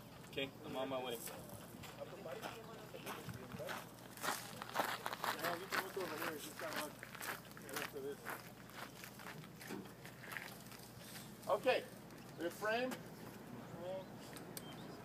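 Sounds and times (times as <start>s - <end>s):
footsteps on dry dirt: 0.0s - 11.4s.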